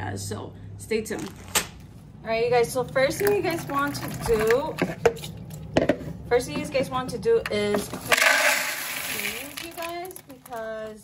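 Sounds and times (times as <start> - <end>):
woman talking: 0.0 - 1.4, 2.2 - 5.0, 6.3 - 11.0
dry beans pouring into bowl: 7.8 - 10.7.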